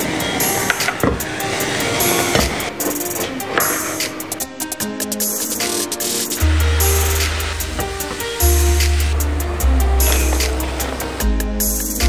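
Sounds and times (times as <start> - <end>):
flames whooshing: 0.0 - 11.2
background music: 0.0 - 12.0.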